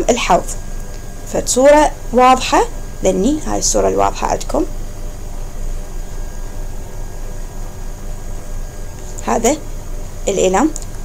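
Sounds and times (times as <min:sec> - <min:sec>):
low rumble: 0:00.0 - 0:11.0.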